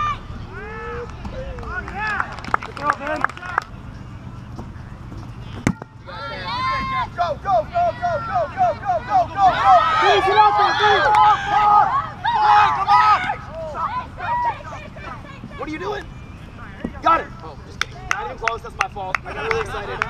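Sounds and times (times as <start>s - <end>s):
players shouting and cheering: 0.0s - 4.5s, 5.4s - 20.0s
ball kicked with a thump: 5.6s - 5.9s.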